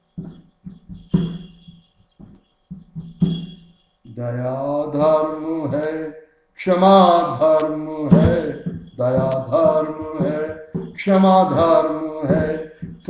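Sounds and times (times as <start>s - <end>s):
man singing devotional song: 4.1s - 13.0s.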